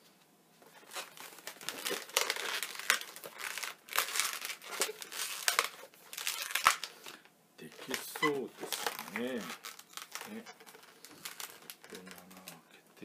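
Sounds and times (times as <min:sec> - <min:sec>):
balloons being twisted and squeezed: 0:00.8 - 0:12.6.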